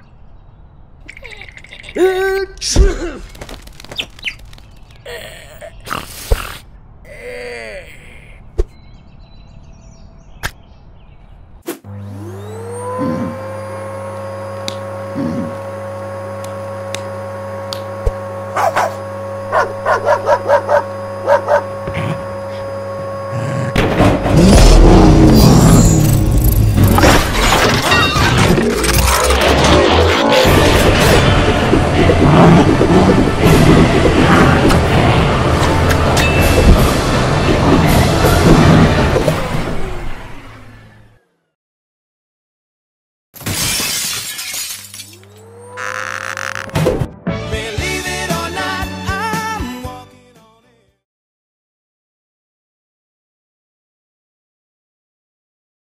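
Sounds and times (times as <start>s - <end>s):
cartoon dog yapping: 18.6s - 21.6s
loud crash: 23.8s - 32.0s
steady hum: 28.4s - 39.2s
glass shattering: 43.4s - 45.2s.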